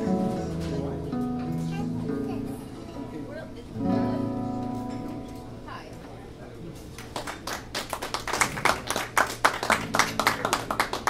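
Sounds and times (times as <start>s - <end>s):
guitar notes: 0.0s - 6.2s
small audience applauding: 6.9s - 11.0s.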